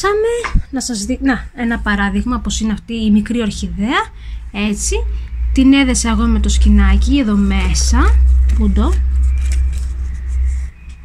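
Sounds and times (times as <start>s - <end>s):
steady low rumble: 0.1s - 11.0s
artificial leaves rustling: 7.0s - 11.0s.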